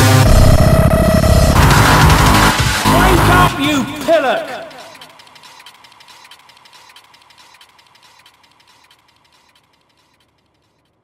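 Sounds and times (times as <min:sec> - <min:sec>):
rapid faint ticks: 0:04.8 - 0:11.0.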